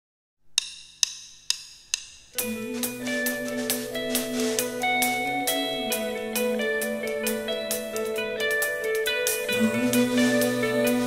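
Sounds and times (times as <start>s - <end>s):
drumsticks clicking together: 0.6s - 6.6s.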